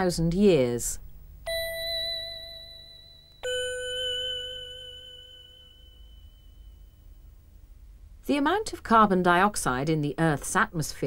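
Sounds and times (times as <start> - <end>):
two-note chime: 1.5 - 7.2.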